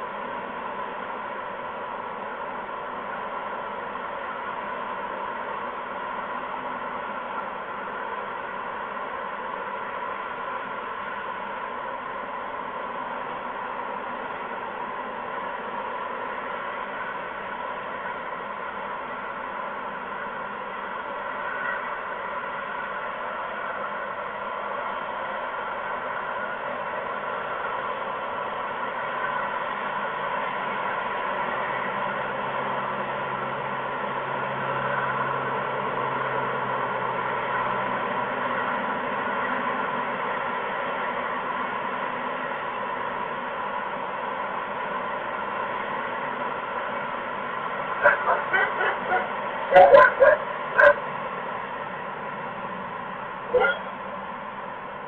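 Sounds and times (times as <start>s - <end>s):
outdoor background hiss: 0.0s - 55.0s.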